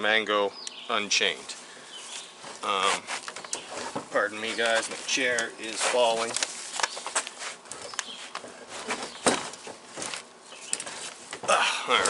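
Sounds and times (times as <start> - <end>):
chair scraping on wooden boards: 2.4 - 6.4, 8.4 - 10.2.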